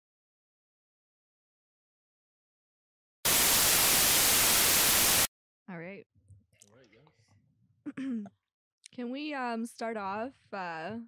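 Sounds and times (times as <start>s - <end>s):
white-noise static burst: 3.3s - 5.3s.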